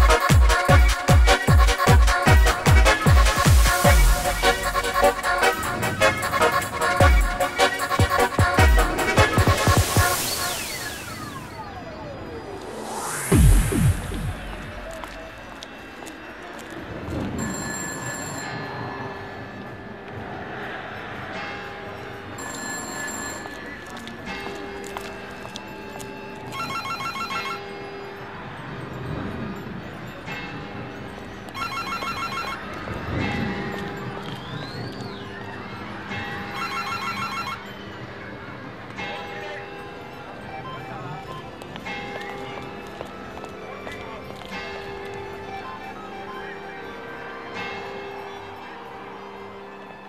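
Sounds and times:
electronic dance music: 0.0 - 15.2
rapid beeping synth: 2.7 - 15.0
ringing telephone-bell-like tone: 17.3 - 19.0, 22.4 - 24.0, 25.7 - 30.3, 30.9 - 43.0.

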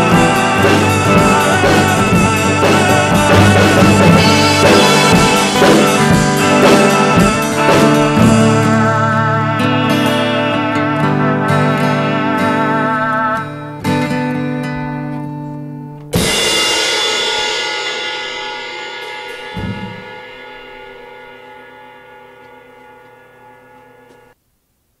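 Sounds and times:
cymbal crash: 0.0 - 8.8, 16.2 - 23.8
indie folk-rock song: 0.0 - 16.4
wavering guitar chords: 0.0 - 16.8, 18.2 - 24.4.

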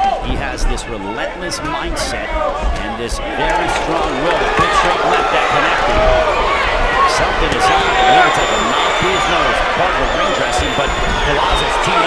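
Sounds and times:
crowd calling out: 1.0 - 12.0.

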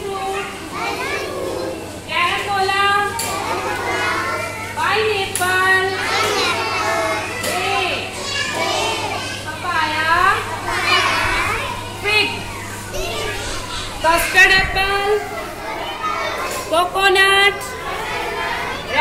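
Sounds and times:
young children talking and calling out: 0.0 - 19.0.

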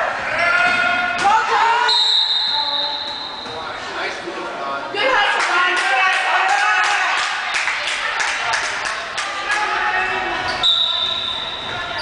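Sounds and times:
spectators chattering: 0.0 - 12.0
referee's whistle blast: 1.9 - 3.5, 10.6 - 11.6.

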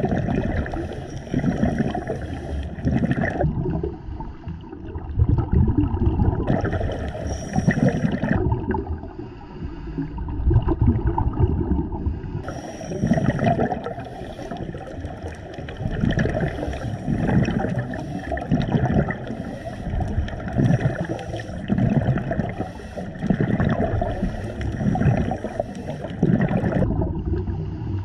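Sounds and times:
muffled underwater water noise: 0.0 - 28.0.

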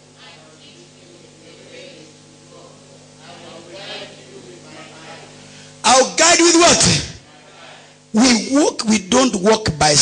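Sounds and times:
electrical hum: 0.0 - 10.0
congregation reading aloud: 0.2 - 10.0.

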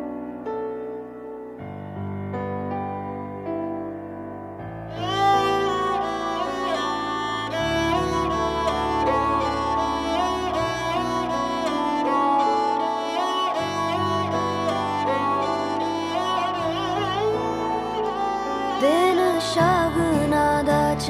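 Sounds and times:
bowed string melody: 4.7 - 21.0.

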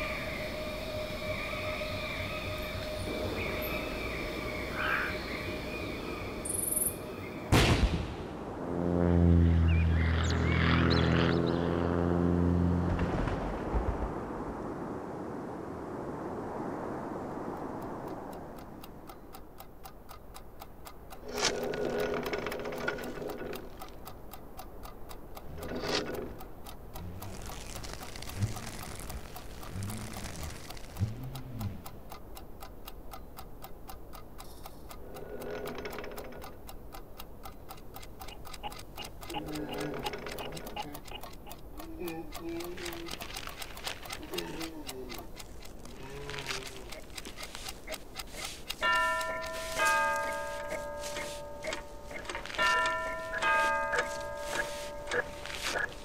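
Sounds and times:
rapid clock-like ticking: 17.8 - 56.0
ringing tones: 48.8 - 56.0.

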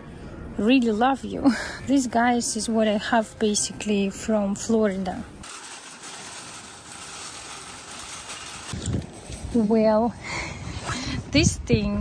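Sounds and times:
parking lot ambience: 0.0 - 5.5, 6.2 - 12.0.

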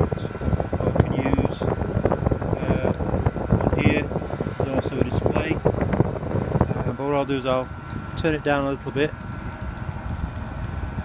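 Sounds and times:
faint steady whine: 0.0 - 11.0
heater blower and burner rumble: 0.0 - 11.0.

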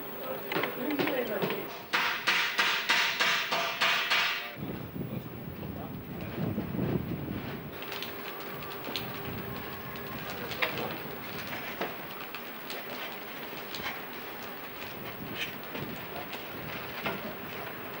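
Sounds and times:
sharp knock: 1.9 - 4.5.

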